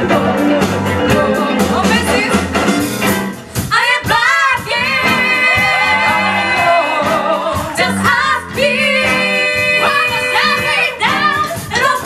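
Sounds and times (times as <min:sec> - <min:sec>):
live soul band: 0:00.0 - 0:12.0
female singers: 0:03.7 - 0:12.0.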